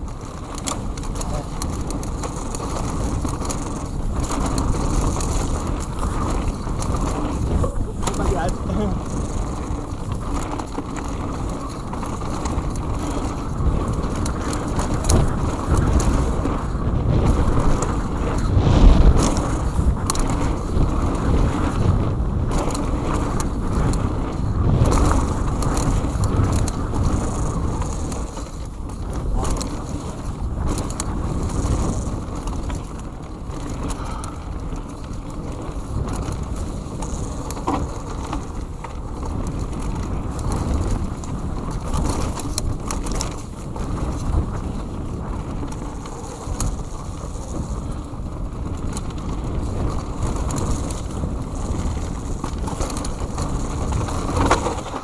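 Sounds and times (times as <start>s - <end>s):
bike knocks and rattles: 0.0s - 55.0s
bike tyres rumbling on dirt: 0.0s - 55.0s.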